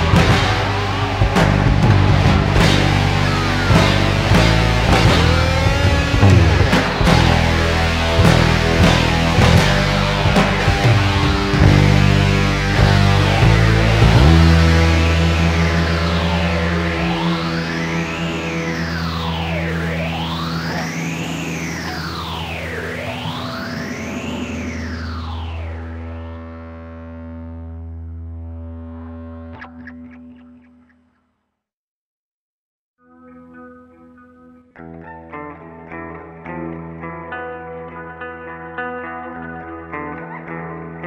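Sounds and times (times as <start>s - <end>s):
drums: 0.0s - 26.8s
held chord swept by effect: 0.0s - 28.8s
fuzzed electric guitar: 0.0s - 31.2s, 33.0s - 41.0s.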